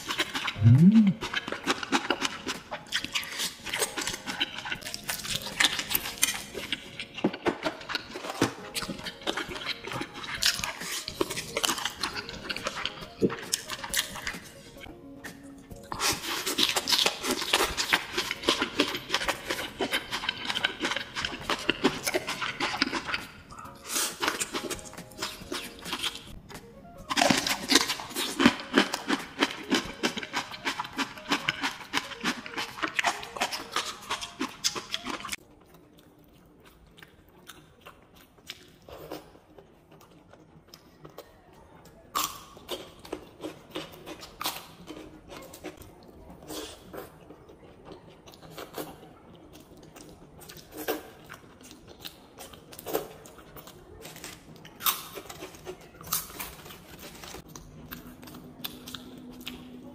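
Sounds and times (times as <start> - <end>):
wet chewing and lip smacking: 0.0 - 59.9.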